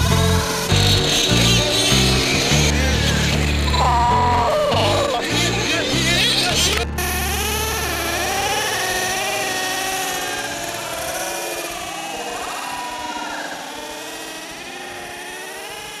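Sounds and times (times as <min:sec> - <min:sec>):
radio-controlled car motors whining: 0:00.0 - 0:16.0.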